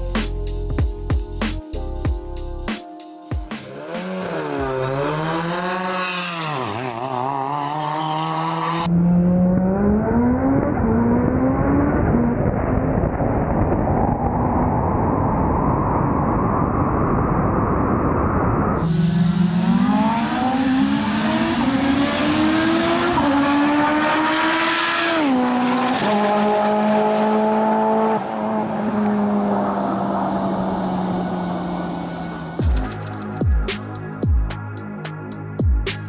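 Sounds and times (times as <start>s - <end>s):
car engine at full throttle: 3.7s - 33.1s
wind noise: 10.6s - 19.0s.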